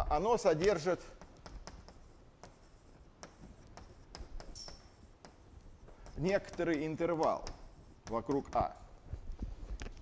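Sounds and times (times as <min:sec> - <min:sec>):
chalk writing on blackboard: 0:00.2 - 0:09.6
chalk tapping on board: 0:00.6 - 0:08.9.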